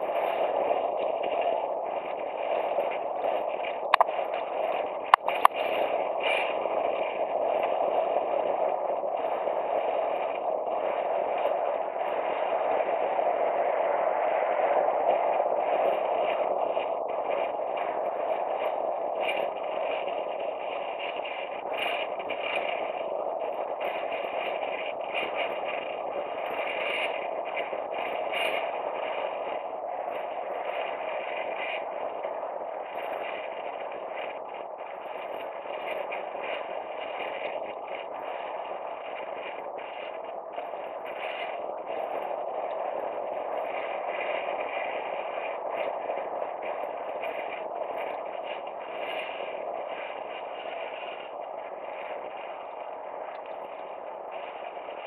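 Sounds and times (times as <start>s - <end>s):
wind rushing over microphone: 0.0s - 55.0s.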